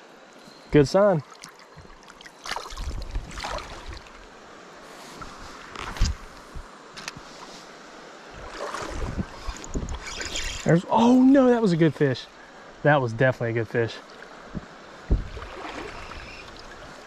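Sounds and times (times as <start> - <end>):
water sloshing: 1.2 - 4.3, 8.3 - 11.5, 14.0 - 17.0
wind rumbling on microphone: 2.7 - 4.2, 5.1 - 7.4, 8.3 - 10.9, 14.5 - 17.0.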